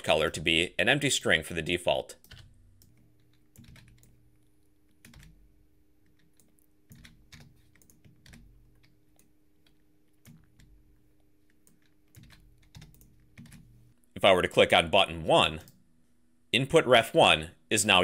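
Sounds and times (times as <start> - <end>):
faint steady hum: 0.0 - 18.0
computer keyboard typing: 2.2 - 13.9.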